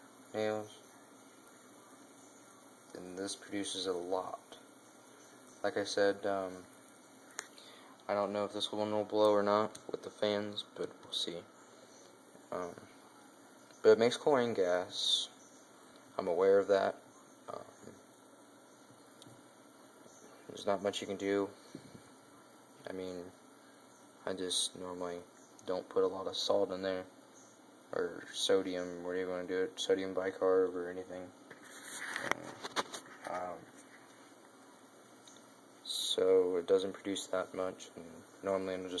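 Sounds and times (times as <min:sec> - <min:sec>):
faint steady hiss: 0:00.0 - 0:39.0
small cooling fans running: 0:00.0 - 0:39.0.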